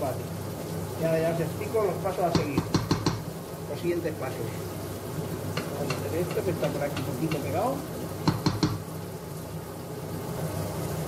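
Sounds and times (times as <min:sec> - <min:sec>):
wooden spoon knocking on pot: 0:02.3 - 0:03.3, 0:05.6 - 0:07.6, 0:08.2 - 0:08.9.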